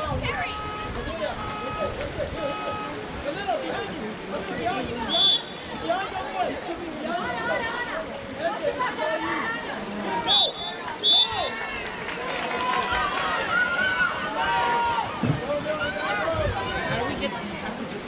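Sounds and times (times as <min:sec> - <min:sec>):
referee's whistle blasts: 0:00.4 - 0:03.0, 0:05.1 - 0:05.7, 0:10.2 - 0:11.5
spectators shouting: 0:08.8 - 0:17.2.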